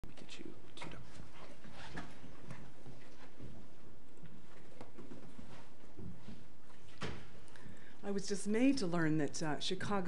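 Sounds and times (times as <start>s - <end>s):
microphone being handled: 0.8s - 7.4s.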